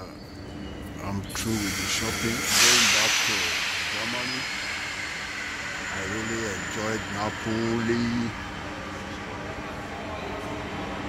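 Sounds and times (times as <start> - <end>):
man talking: 1.0 - 4.5, 5.8 - 8.4
compressed air hiss: 1.4 - 7.9.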